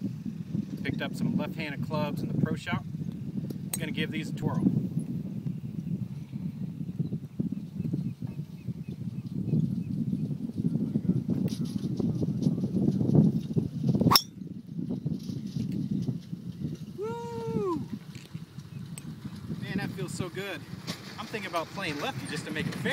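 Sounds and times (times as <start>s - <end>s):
golf club striking ball: 14.1s - 14.4s.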